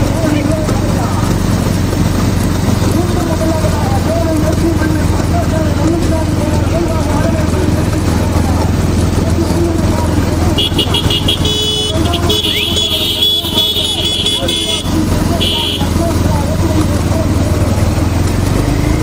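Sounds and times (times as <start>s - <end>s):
low rumble of vehicle engines: 0.0s - 19.0s.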